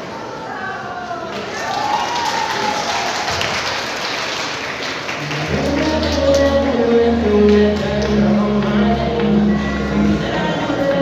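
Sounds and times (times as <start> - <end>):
audience applauding: 1.3 - 6.6
music with steady bass line: 5.3 - 11.0.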